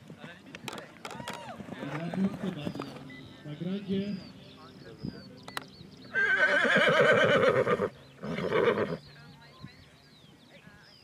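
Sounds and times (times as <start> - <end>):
horse whinnying: 6.1 - 9.0.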